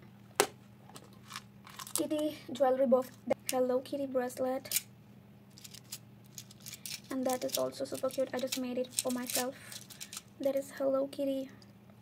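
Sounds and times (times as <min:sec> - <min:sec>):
plastic items clicking: 0:05.6 - 0:10.3
plastic rustles: 0:05.6 - 0:10.3.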